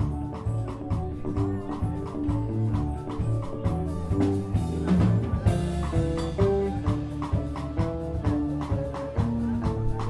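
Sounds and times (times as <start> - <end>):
drum kit steady beat: 0.0 - 10.0
electric bass plucked notes: 0.0 - 10.0.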